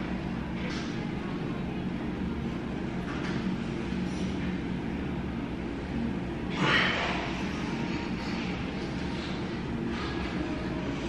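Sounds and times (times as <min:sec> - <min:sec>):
steady low hum: 0:00.0 - 0:11.0.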